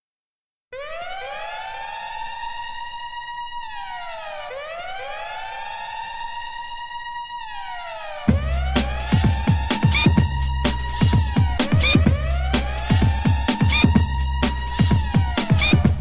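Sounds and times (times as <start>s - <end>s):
siren sound effect with echo: 0.7s - 16.0s
heavy dance beat with deep bass: 8.2s - 16.0s.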